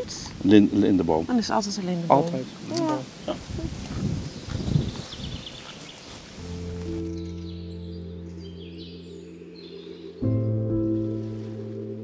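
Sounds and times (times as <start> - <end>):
leaves rustling: 0.0 - 7.7, 10.8 - 12.0
wind: 0.0 - 12.0
soft music of long held chords: 6.4 - 12.0.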